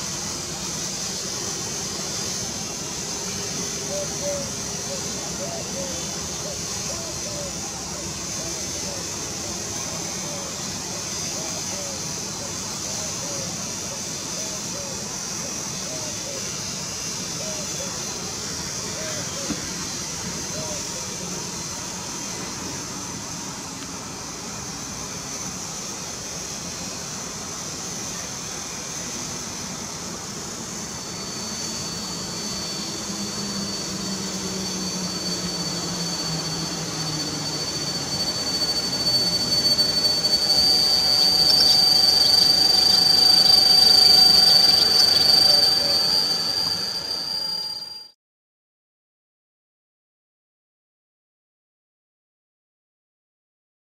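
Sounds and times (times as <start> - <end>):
electric train running hum: 0.0 - 48.2
high-pitched brake squeal: 0.0 - 48.2.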